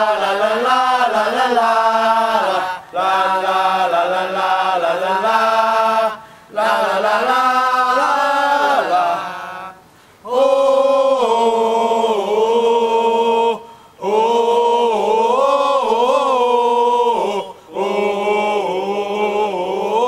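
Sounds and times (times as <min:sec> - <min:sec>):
voices singing a chant-like cheer: 0:00.0 - 0:20.0.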